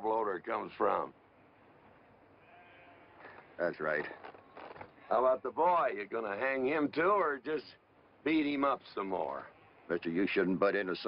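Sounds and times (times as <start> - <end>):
sheep bleating faintly: 2.4 - 3.4.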